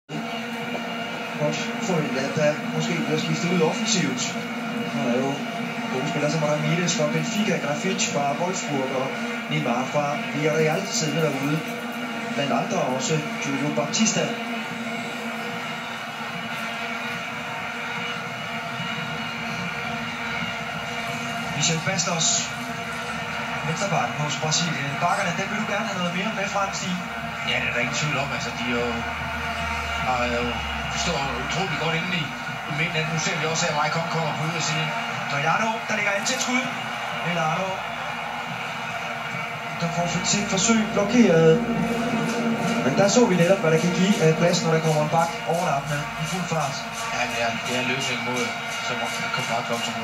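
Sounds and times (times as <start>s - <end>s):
vuvuzela horns droning: 40.3s - 46.2s.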